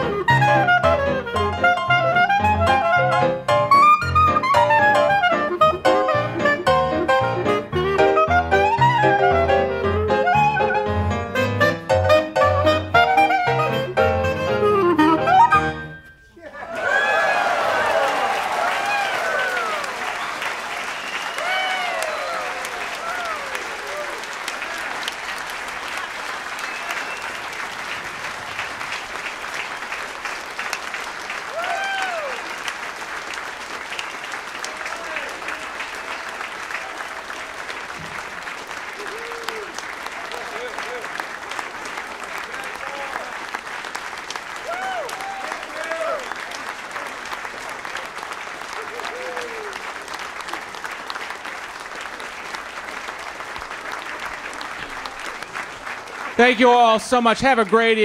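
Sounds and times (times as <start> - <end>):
audience applauding: 0.0 - 11.2, 16.4 - 58.0.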